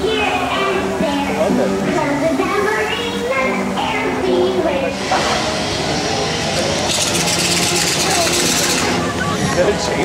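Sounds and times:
voices: 0.0 - 10.0
chainsaw running and revving: 6.8 - 9.1.

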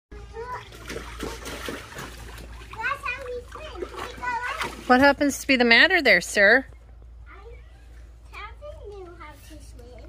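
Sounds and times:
water splashing: 0.2 - 6.1.

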